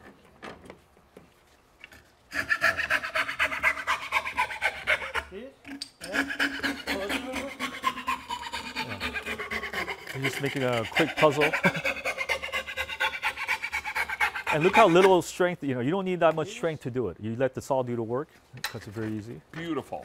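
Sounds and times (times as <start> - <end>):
hand saw cutting wood: 2.3 - 15.3.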